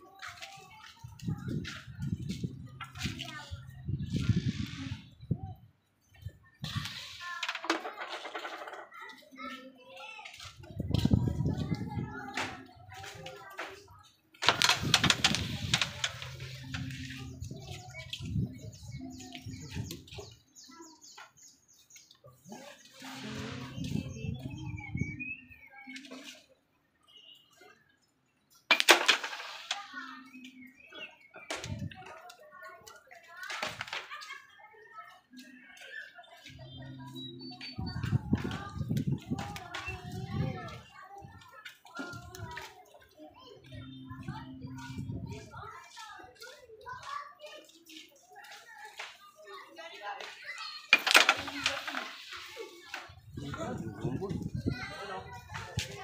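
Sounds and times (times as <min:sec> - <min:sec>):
people talking casually: 0:00.0 - 0:28.1, 0:29.6 - 0:56.0.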